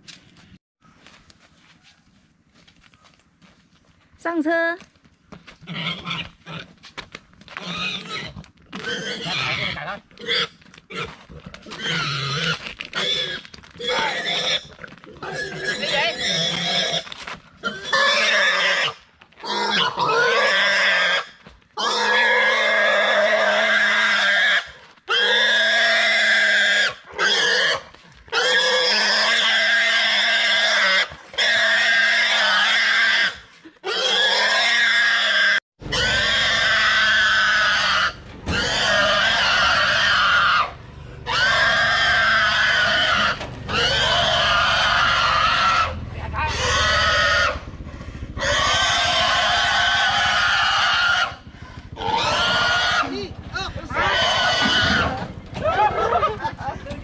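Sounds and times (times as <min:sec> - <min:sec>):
pig screaming: 0:07.6 - 0:17.0, 0:17.6 - 0:47.7, 0:48.4 - 0:56.6.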